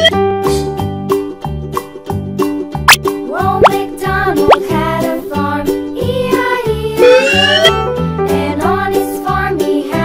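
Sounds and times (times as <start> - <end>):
children's music with steady beat: 1.1 - 10.0
rising-pitch sound effects: 7.0 - 7.9.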